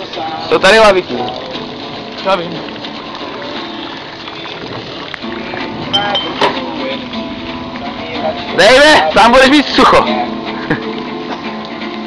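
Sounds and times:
steady rushing noise: 0:03.9 - 0:10.5.

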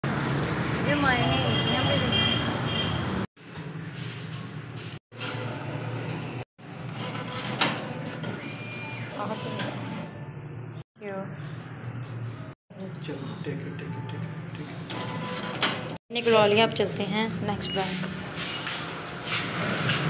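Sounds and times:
vehicle engine and road noise: 0:00.0 - 0:08.3, 0:09.4 - 0:20.0
woman talking: 0:11.0 - 0:11.5, 0:16.1 - 0:18.1.

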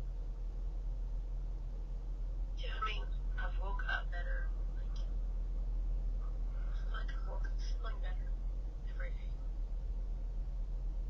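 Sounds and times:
car interior rumble: 0:00.0 - 0:11.0
indistinct speech: 0:02.6 - 0:05.0, 0:06.6 - 0:08.2, 0:08.9 - 0:09.2.

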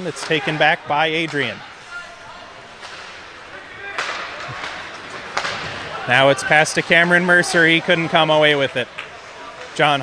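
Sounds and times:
hockey sticks and puck clacking: 0:00.0 - 0:10.0
skates scraping on ice: 0:01.2 - 0:08.2.

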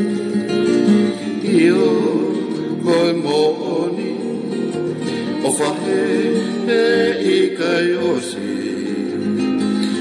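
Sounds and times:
guitar accompaniment: 0:00.0 - 0:10.0
person singing: 0:00.0 - 0:10.0.

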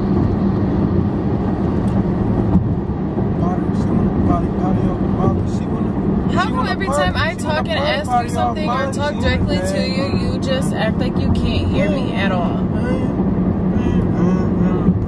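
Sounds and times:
car engine and road drone: 0:00.0 - 0:15.0
people talking: 0:03.4 - 0:13.1, 0:13.8 - 0:15.0.

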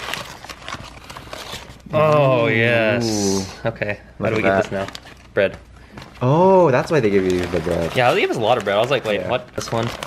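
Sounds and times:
paper crinkling and rustling: 0:00.0 - 0:02.4, 0:04.3 - 0:10.0.

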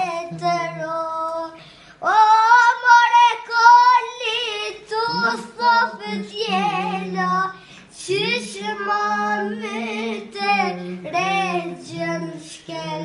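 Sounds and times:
boy singing: 0:00.0 - 0:13.0.

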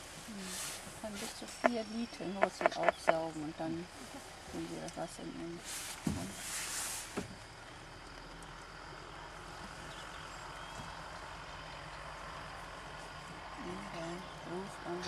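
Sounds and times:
rustling noise: 0:00.0 - 0:01.7, 0:05.6 - 0:07.4
faint low hum and hiss: 0:00.0 - 0:15.0.

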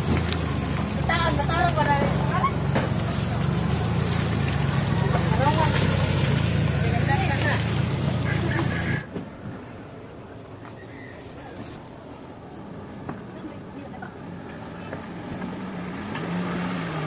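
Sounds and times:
people talking: 0:00.8 - 0:03.8, 0:04.4 - 0:06.0, 0:06.7 - 0:09.1, 0:13.2 - 0:15.0.

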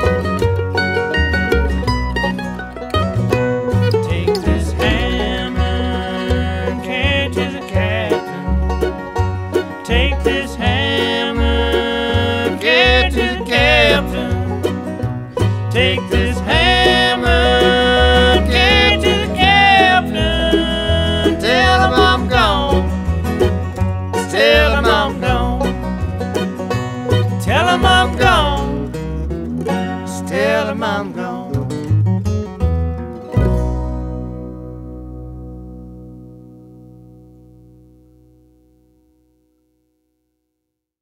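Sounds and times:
bluegrass string band playing: 0:00.0 - 0:37.7.

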